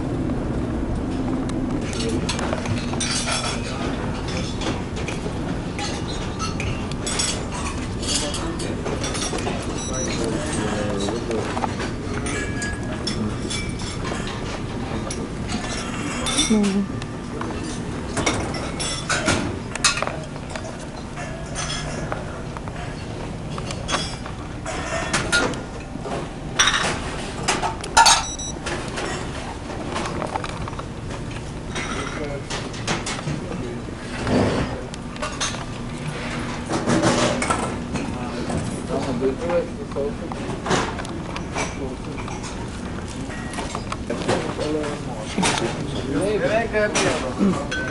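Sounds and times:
low background hum: 0.0s - 47.9s
tableware clinking: 1.9s - 22.2s, 22.8s - 30.8s, 46.9s - 47.9s
diners chatter: 6.7s - 26.6s, 29.1s - 47.9s.

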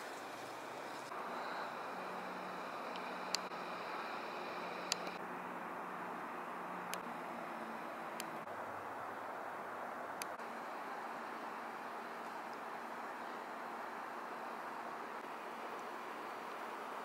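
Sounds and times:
sharp clicks: 4.8s - 5.2s.

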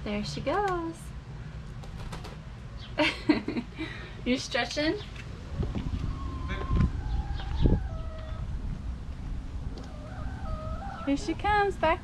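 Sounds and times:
hens calling: 5.3s - 8.8s, 9.6s - 12.0s
low rumble: 5.4s - 12.0s.

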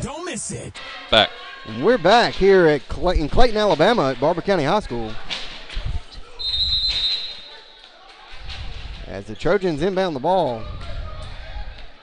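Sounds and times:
referee whistle blast: 6.4s - 7.5s.

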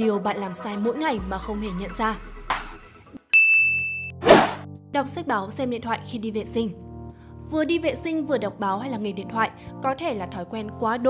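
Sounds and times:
low sustained notes: 1.1s - 3.2s
bright ding: 3.3s - 4.2s
short swoosh: 4.2s - 4.6s.

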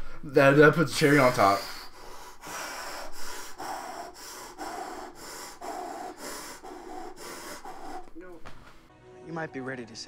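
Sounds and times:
man puffing breaths out: 1.0s - 8.8s.

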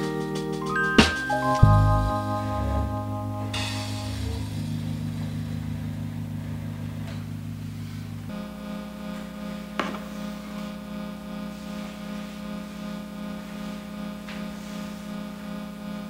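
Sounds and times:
droning keyboard chord: 0.0s - 16.0s.

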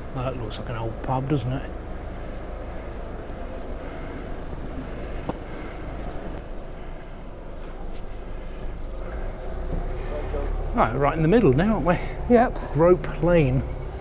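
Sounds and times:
low street rumble: 0.0s - 14.0s.

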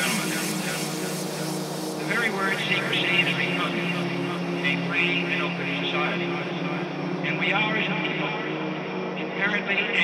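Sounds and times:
faint pulsing high synth: 0.0s - 10.0s
low synth drone: 0.0s - 10.0s
wavering bending synth sounds: 0.0s - 10.0s.

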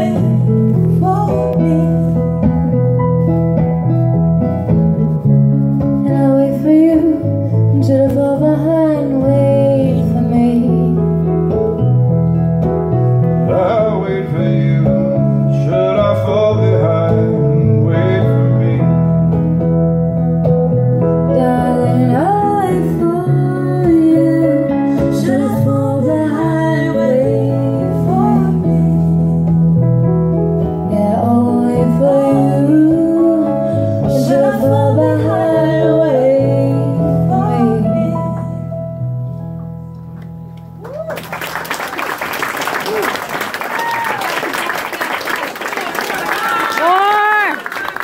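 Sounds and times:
woman singing: 0.0s - 2.2s, 6.0s - 11.1s, 21.3s - 29.5s, 30.8s - 38.7s
low bass notes: 0.0s - 40.8s
guitar: 0.0s - 45.1s.

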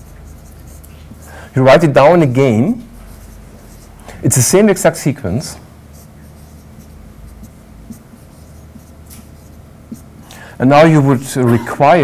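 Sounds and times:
chalk scratching on a blackboard: 0.0s - 1.3s, 2.8s - 4.0s, 5.9s - 10.3s
low room hum: 0.0s - 12.0s.

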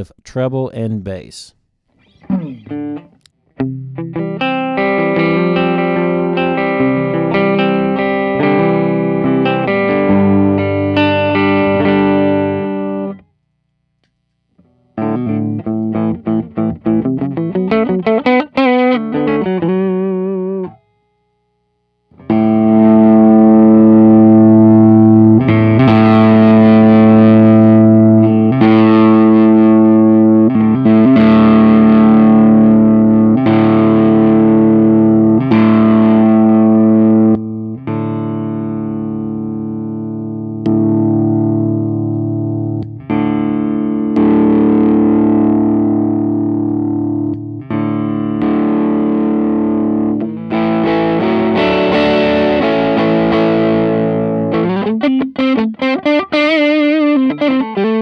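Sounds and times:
overdriven electric guitar: 1.9s - 13.3s, 14.0s - 21.4s, 22.0s - 58.0s.

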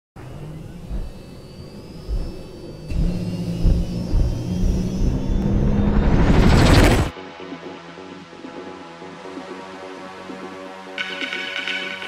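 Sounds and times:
faint high whine: 0.2s - 7.1s
low rumbling drone: 0.2s - 7.1s
deep booming hits: 2.1s - 6.0s.

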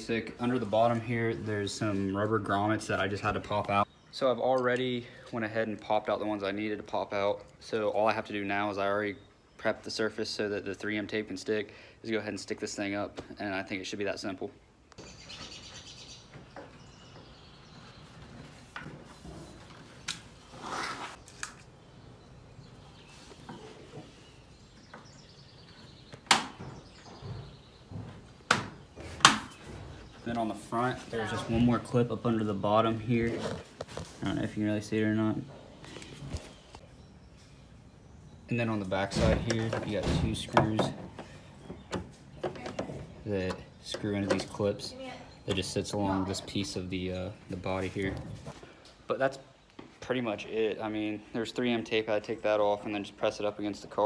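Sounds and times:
faint birdsong: 0.0s - 54.0s.

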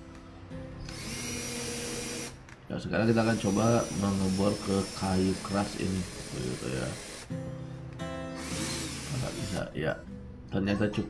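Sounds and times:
plucked acoustic guitar music: 7.3s - 8.6s.

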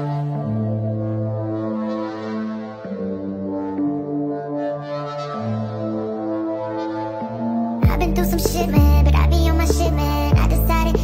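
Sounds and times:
sped-up instrumental music: 0.0s - 11.0s.

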